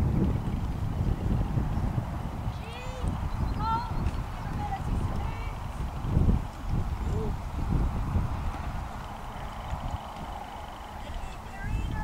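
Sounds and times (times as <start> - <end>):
pony hoofbeats on sand: 0.0 - 12.0
wind rumbling on microphone: 0.0 - 12.0.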